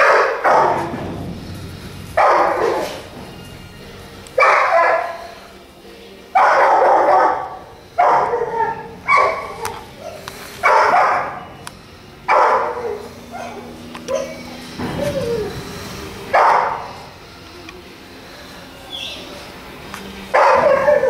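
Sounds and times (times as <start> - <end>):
dog baying loudly: 2.2 - 3.1, 4.4 - 5.4, 6.4 - 11.6, 12.3 - 15.6, 20.3 - 21.0.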